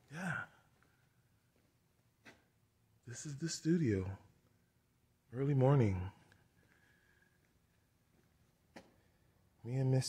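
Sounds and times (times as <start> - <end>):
man saying yeah: 0.0 - 0.6.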